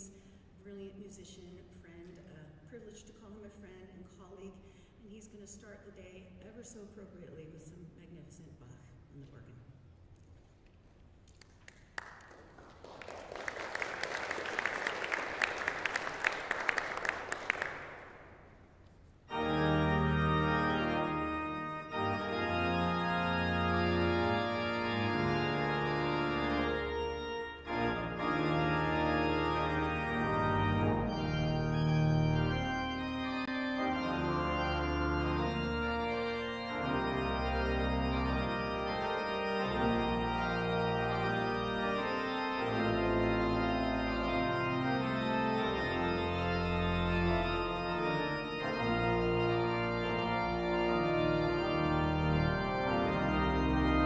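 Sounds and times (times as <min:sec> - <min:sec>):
audience applause: 0:11.4 - 0:18.4
pipe organ chords: 0:13.2 - 0:18.4, 0:19.2 - 0:54.0.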